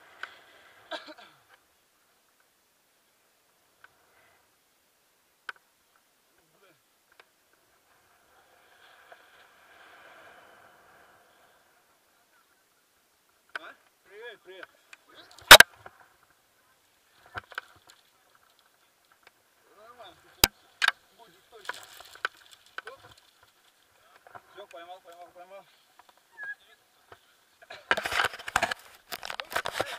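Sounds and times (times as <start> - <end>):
faint airy hiss: 0.0 - 27.9
harness and rope rustling: 14.6 - 29.9.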